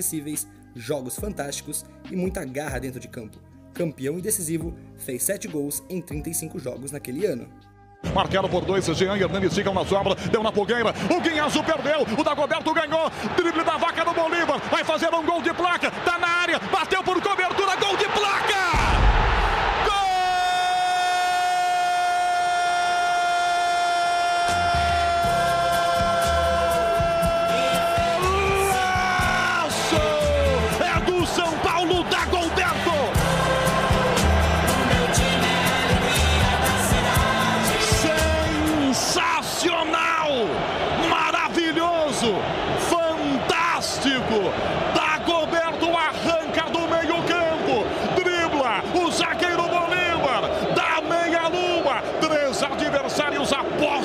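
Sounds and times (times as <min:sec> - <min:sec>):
excited voices: 0:11.2 - 0:54.0.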